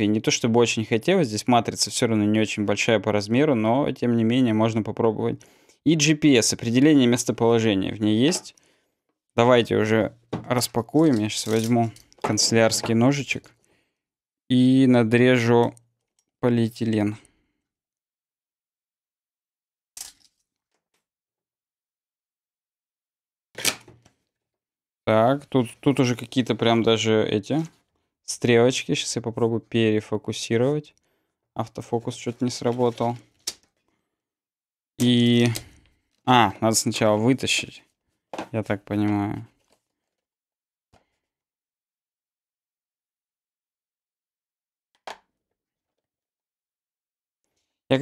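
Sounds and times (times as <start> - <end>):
faint handling sounds: 10.5 - 13.7, 32.0 - 34.0.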